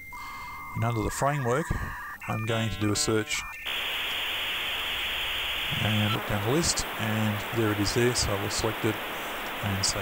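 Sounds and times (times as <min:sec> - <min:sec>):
recording hiss: 0:03.6 - 0:10.0.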